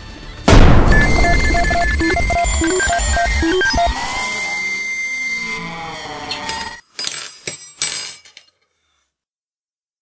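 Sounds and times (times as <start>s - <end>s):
steady high tone: 0.5s - 6.8s.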